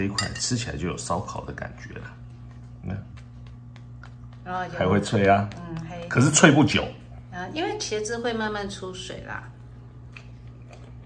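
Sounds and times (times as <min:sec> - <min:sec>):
low room hum: 0:00.0 - 0:11.0.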